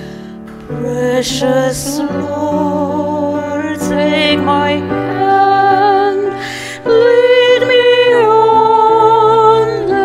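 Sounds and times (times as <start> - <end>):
piano accompaniment: 0.0 - 10.0
woman singing into a microphone: 0.5 - 10.0.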